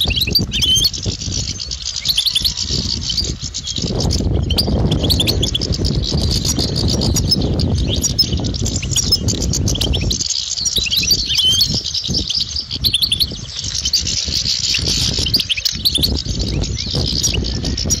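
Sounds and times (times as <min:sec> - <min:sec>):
goldfinches twittering: 0:00.0 - 0:18.0.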